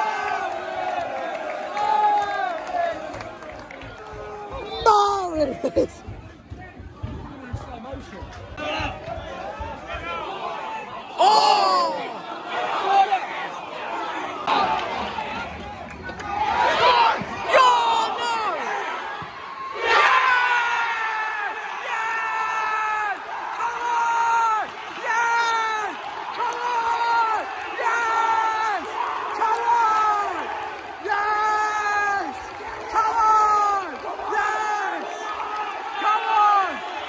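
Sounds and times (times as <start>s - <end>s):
crowd cheering: 0.0s - 37.0s
football fans shouting: 0.0s - 37.0s
loud yells: 16.3s - 37.0s.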